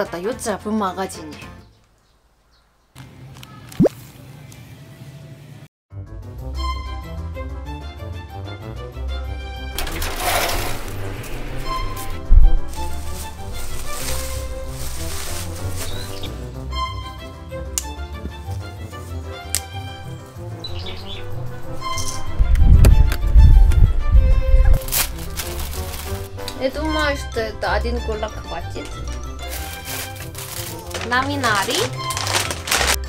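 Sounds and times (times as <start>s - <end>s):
background music with repeating notes: 6.0s - 33.0s
low rumbling handling noise: 9.8s - 16.2s.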